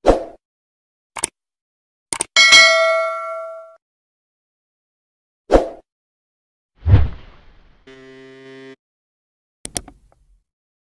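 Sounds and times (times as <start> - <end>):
short clicks: 1.2 - 1.4
metallic ding: 2.4 - 3.8.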